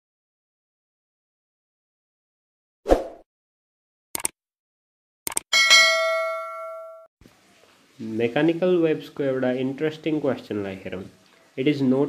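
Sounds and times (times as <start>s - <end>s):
bright bell-like notification ding: 5.6s - 7.1s.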